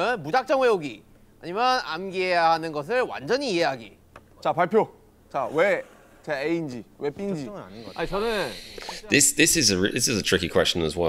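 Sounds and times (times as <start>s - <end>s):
man speaking: 0.0s - 11.0s
faint hiss: 5.3s - 10.4s.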